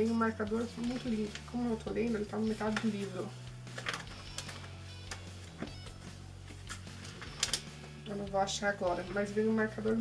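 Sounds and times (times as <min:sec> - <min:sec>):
book pages flipping: 0:00.5 - 0:08.1.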